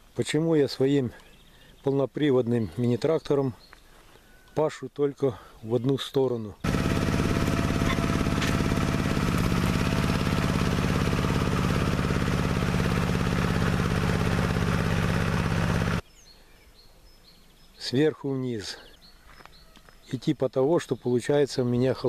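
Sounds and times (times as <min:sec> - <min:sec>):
faint outdoor background: 0:00.0 - 0:22.0
tractor engine running under load: 0:06.6 - 0:16.0.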